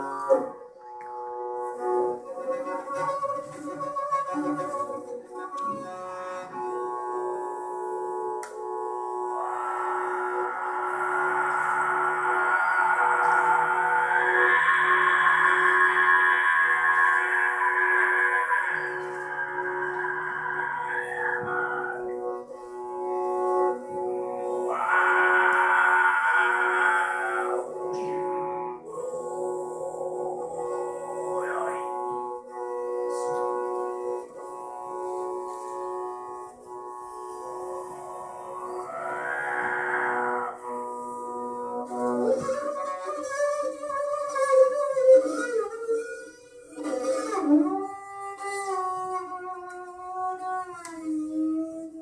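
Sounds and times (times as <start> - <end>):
bowed string instrument: 0.0 - 52.0.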